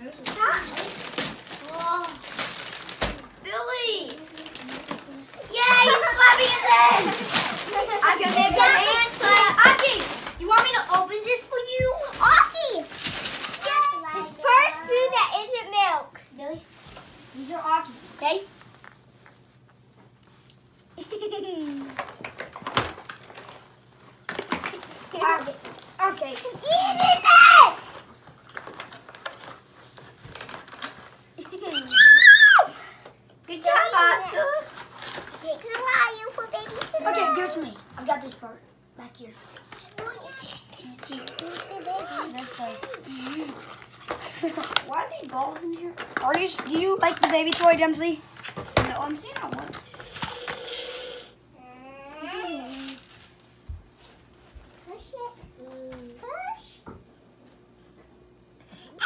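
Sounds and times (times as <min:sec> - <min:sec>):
child exclaiming: 0:05.5 - 0:10.8, 0:11.4 - 0:12.8, 0:26.1 - 0:28.0, 0:31.6 - 0:32.8, 0:36.0 - 0:37.7, 0:40.0 - 0:43.0
plastic toys clicking and knocking: 0:07.1 - 0:14.0, 0:21.8 - 0:23.6, 0:39.4 - 0:51.1.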